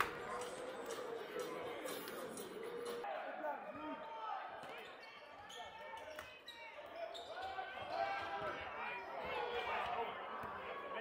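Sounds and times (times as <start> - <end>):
crowd and player voices: 0.0 - 11.0.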